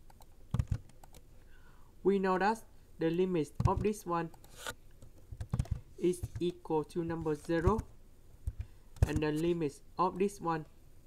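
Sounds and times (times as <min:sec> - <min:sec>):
computer keyboard keystrokes: 0:00.0 - 0:01.2, 0:03.6 - 0:06.5, 0:07.1 - 0:09.4.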